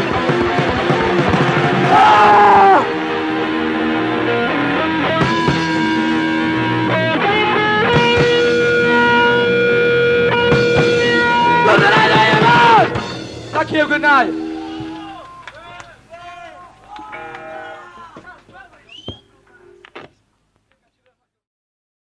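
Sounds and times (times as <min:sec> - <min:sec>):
distorted electric guitar sustained notes: 0:00.0 - 0:15.2.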